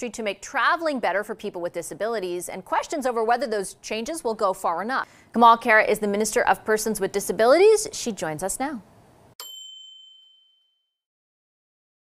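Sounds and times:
bell-like ding: 0:09.4 - 0:11.0.

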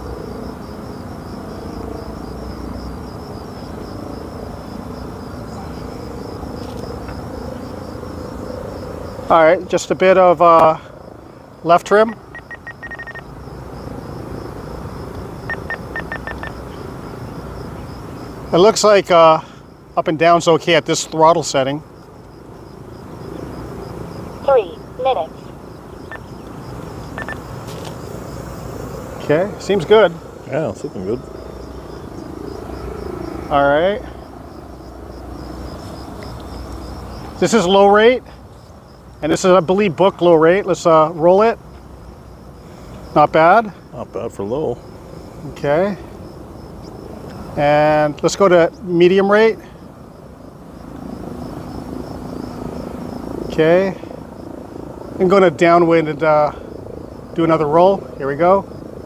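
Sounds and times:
electric motors and propellers humming: 0:00.0 - 0:10.1, 0:10.9 - 0:18.7, 0:21.8 - 0:37.8.

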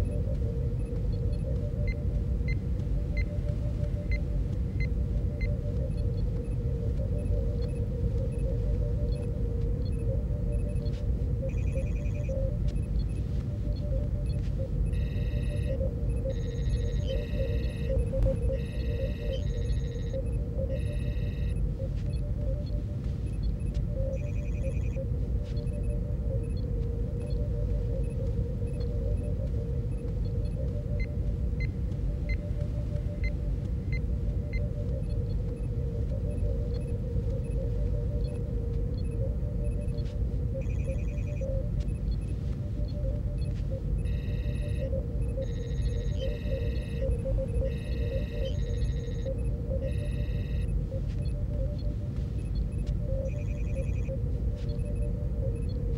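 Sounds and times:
constant mid tone: 0:00.0 - 0:55.9
computer chirps and beeps: 0:42.9 - 0:51.8.

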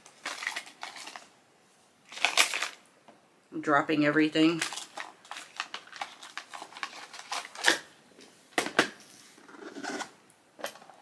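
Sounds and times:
plastic items clicking and rustling: 0:00.0 - 0:01.3, 0:04.6 - 0:07.9, 0:09.6 - 0:11.0.

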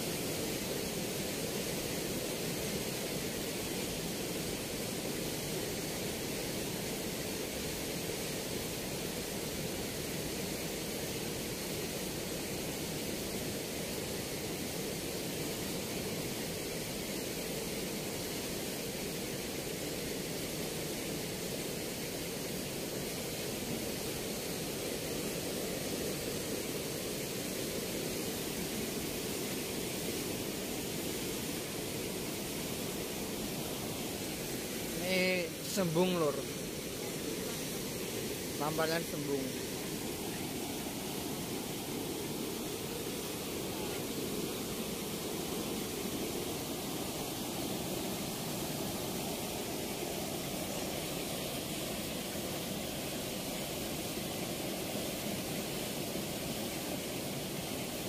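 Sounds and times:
water rushing below weir: 0:00.0 - 0:58.0.

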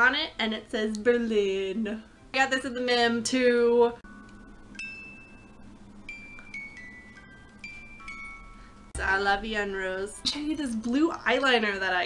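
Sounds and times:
music box playing a slow tune: 0:04.0 - 0:09.0.

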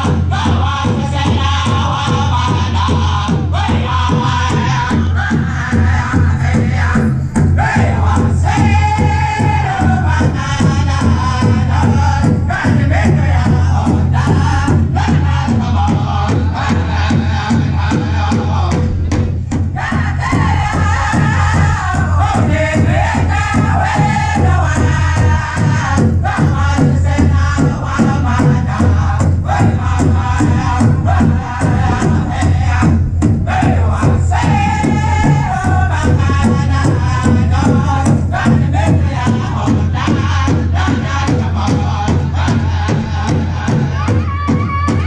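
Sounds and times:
large drum beating: 0:00.0 - 0:45.0
men chanting: 0:00.0 - 0:45.0.

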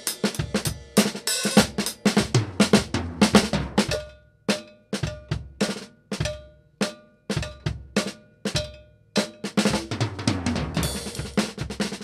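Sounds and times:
drum kit solo: 0:00.0 - 0:12.0.

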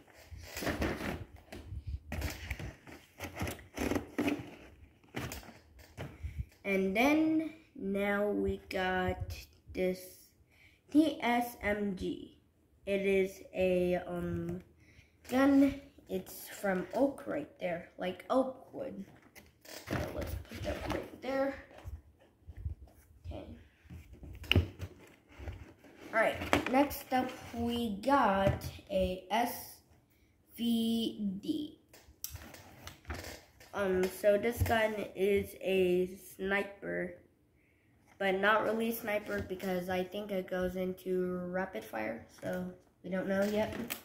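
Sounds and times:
cardboard boxes scraping and rustling: 0:02.2 - 0:05.6.

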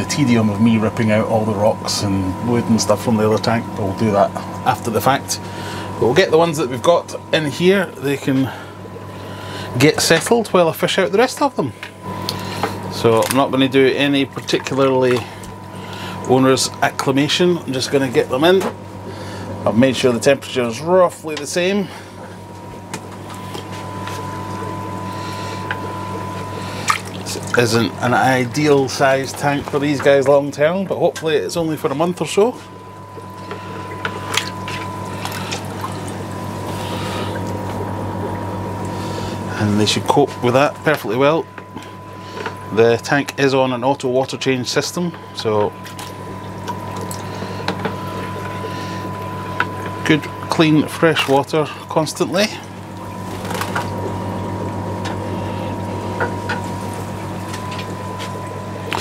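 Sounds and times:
low electrical hum: 0:00.0 - 0:59.0
water running through drain pipes: 0:00.0 - 0:59.0.

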